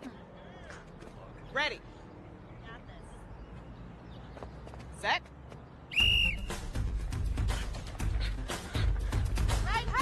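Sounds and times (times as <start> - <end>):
whistle blast: 5.9 - 6.7
music with heavy low beat: 6.4 - 10.0.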